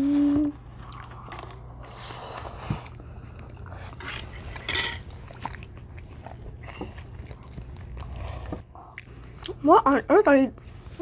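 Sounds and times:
children chewing: 0.1s - 9.6s.

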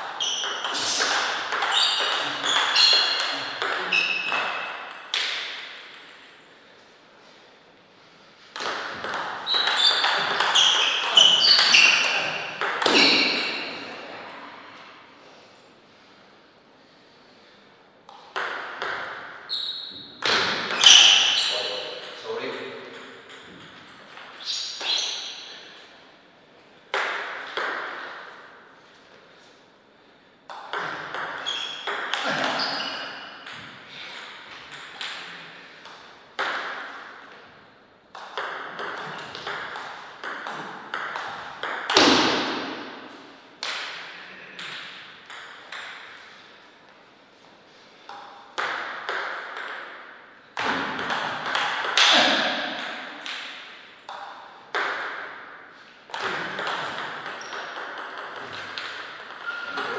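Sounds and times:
table tennis ball bouncing on table: 0.0s - 6.4s, 8.5s - 13.8s, 18.1s - 19.4s, 22.0s - 25.4s, 26.9s - 28.3s, 30.5s - 37.2s, 38.1s - 43.0s, 44.6s - 46.2s, 48.1s - 59.9s
table tennis ball hitting paddles: 0.0s - 6.4s, 8.5s - 13.9s, 18.1s - 19.4s, 20.0s - 21.4s, 22.0s - 25.5s, 26.9s - 28.4s, 30.5s - 37.3s, 38.1s - 46.3s, 48.1s - 59.9s.

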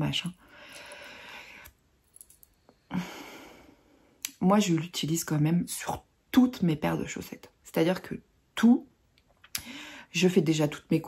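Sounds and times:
soft breath out: 0.4s - 1.7s.

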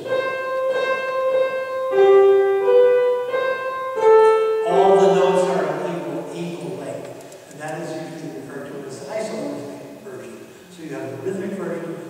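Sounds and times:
slow keyboard melody: 0.0s - 6.8s
man speaking: 4.6s - 12.0s.

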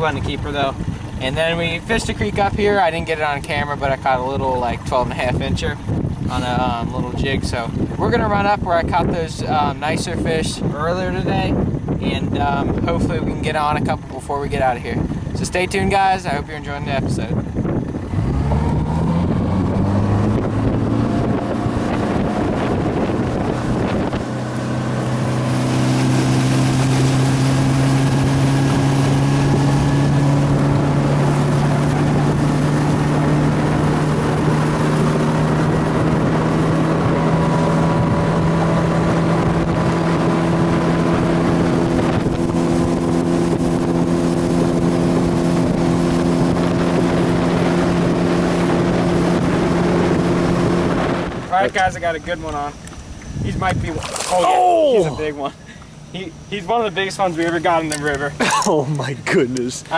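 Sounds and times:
outboard motor accelerating: 0.0s - 59.9s
rush of wind and water: 0.0s - 59.9s.

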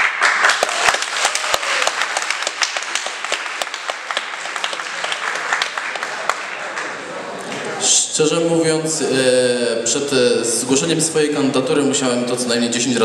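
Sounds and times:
small audience applauding: 0.0s - 7.8s.

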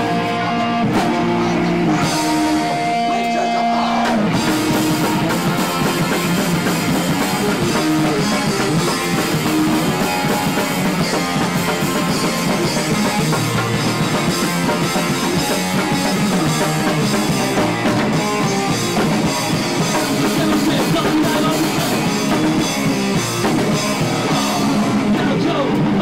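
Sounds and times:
drums crashing in: 0.0s - 26.0s
punk rock band playing: 0.0s - 26.0s
ringing guitar chords: 0.0s - 26.0s.

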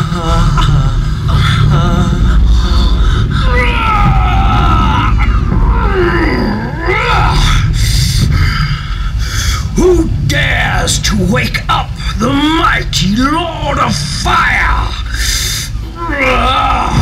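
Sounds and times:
constant deep rumble: 0.0s - 17.0s.

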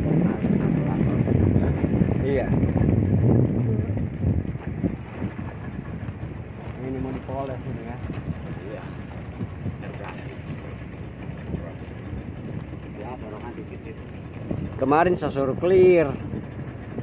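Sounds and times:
speedboat engine: 0.0s - 17.0s
water rushing: 0.0s - 17.0s
wind on microphone: 0.0s - 17.0s.

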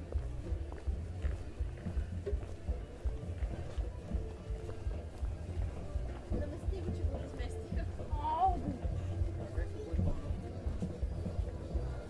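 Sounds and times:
folk music with heavy low beat: 0.0s - 12.0s.

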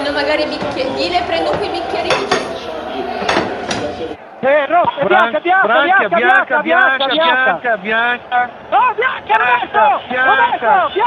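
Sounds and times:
background talk: 0.0s - 11.0s
dishes and cutlery clinking: 1.5s - 2.6s.

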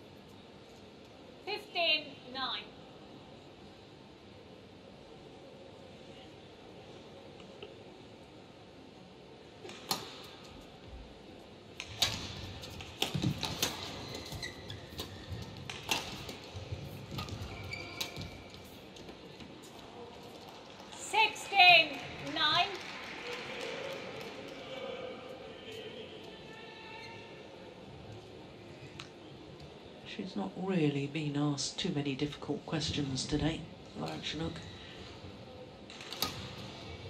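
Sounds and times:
shoes squeaking on court: 12.6s - 19.8s.

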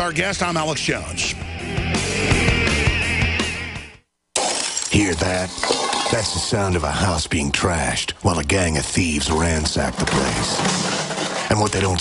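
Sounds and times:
heavy rock music: 0.0s - 4.0s
glass shattering: 4.4s - 6.9s, 10.0s - 12.0s
things crashing: 4.4s - 7.0s, 9.6s - 12.0s.

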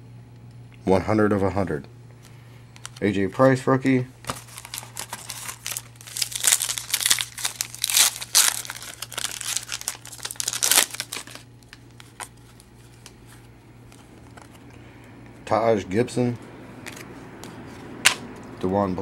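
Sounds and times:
foil wrapper crinkling: 2.8s - 3.6s, 4.2s - 13.2s.

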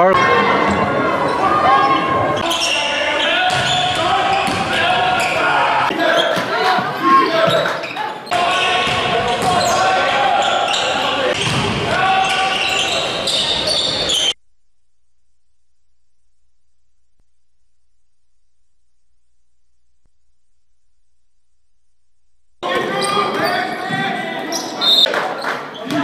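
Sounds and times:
crowd voices: 0.0s - 14.4s, 22.6s - 26.0s
ball bouncing on hardwood court: 3.5s - 4.8s, 11.3s - 11.9s.

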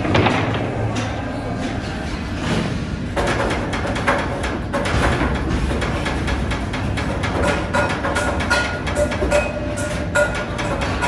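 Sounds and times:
rapid metal clicks and clinks: 3.2s - 11.0s.

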